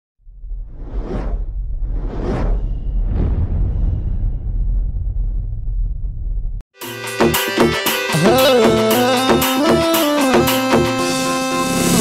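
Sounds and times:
deep low rumble: 0:00.2 - 0:06.7
whoosh: 0:00.3 - 0:06.6.

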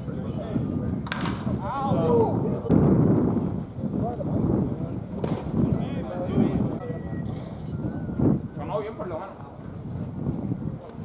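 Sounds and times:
wooden bat hitting ball: 0:01.0 - 0:01.6.

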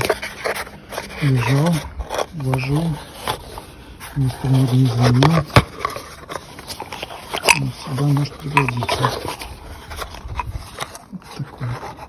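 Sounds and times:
cardboard box rustling and clicking: 0:00.0 - 0:12.0.

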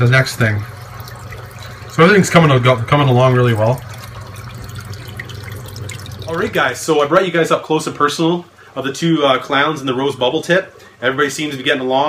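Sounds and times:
water running and dripping: 0:00.0 - 0:06.8.

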